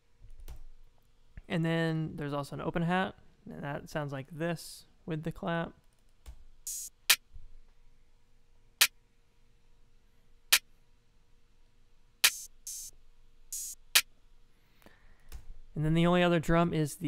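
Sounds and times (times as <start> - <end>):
hissing open hi-hat hits: 6.7 - 7.2, 12.2 - 12.9, 13.5 - 14.1
drum machine clap hits: 12.2 - 12.9, 13.6 - 14.1.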